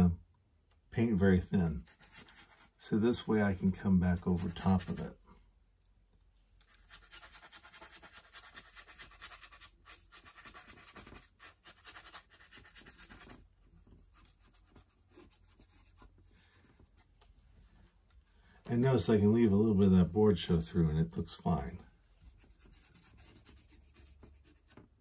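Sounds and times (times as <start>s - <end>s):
paintbrush scratching: 1.8s - 5.2s, 6.7s - 17.1s, 22.2s - 24.8s.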